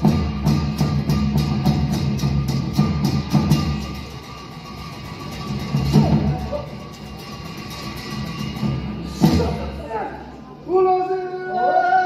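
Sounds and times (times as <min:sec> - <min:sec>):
drum and cymbals beating: 0:00.0 - 0:10.3.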